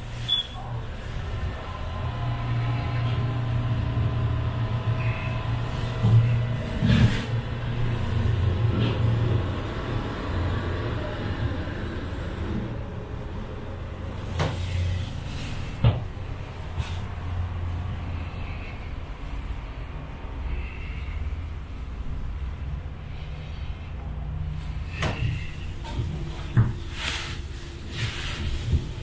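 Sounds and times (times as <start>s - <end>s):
funicular car running hum: 0.0s - 29.0s.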